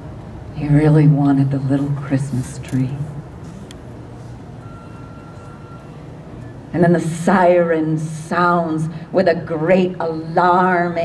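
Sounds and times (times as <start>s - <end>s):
low background hum: 0.0s - 11.0s
faint high-pitched tone: 4.6s - 6.7s.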